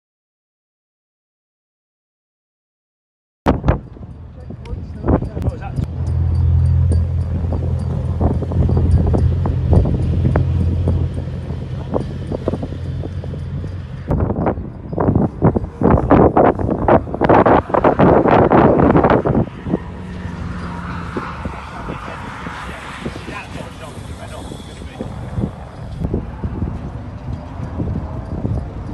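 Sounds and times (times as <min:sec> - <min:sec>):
race car engines droning: 0:03.5 - 0:28.9
wind buffeting microphone: 0:03.5 - 0:28.9.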